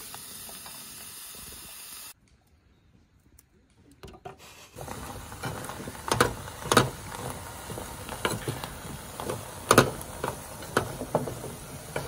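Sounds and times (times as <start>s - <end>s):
gas stove hiss: 0.0s - 2.2s, 4.4s - 12.0s.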